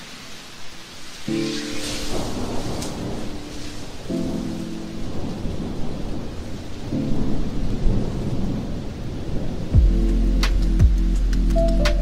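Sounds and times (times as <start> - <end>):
lo-fi music with held chord: 0.0 - 12.0
rain: 0.0 - 12.0
low rumble of thunder: 1.5 - 11.1.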